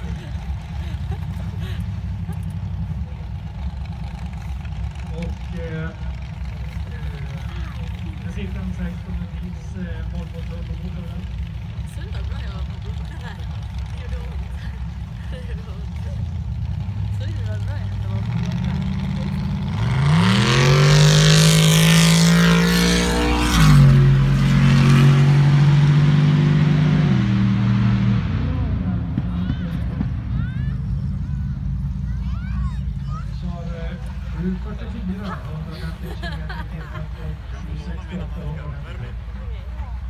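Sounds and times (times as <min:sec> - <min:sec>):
car engine revving hard: 0:17.9 - 0:30.2.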